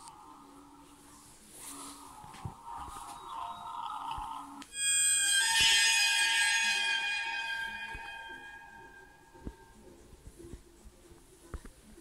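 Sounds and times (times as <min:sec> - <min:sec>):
loud ringing musical tone: 0:04.7 - 0:09.9.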